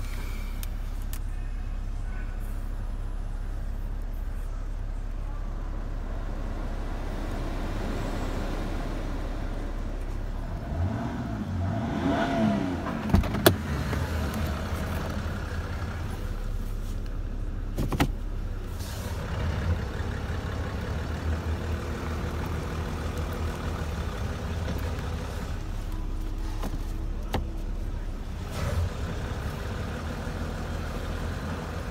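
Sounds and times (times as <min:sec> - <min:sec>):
car engine idling: 0:00.0 - 0:31.9.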